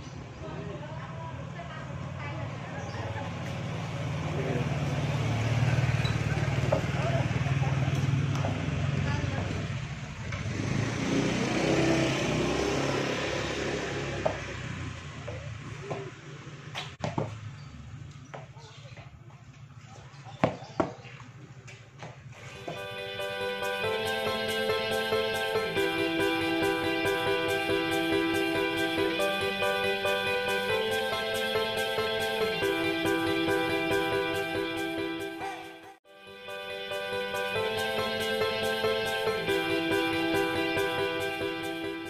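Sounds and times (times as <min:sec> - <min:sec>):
motor scooter passing: 0:00.2 - 0:18.3, 0:22.2 - 0:35.6, 0:37.6 - 0:42.0.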